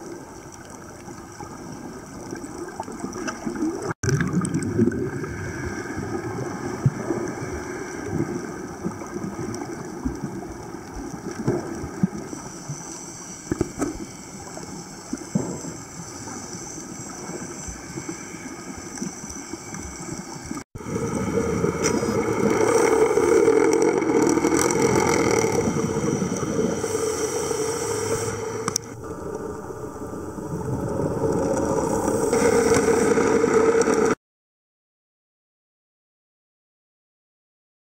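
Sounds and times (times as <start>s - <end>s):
underwater water rush: 0.0s - 34.2s
low hum: 20.8s - 34.2s.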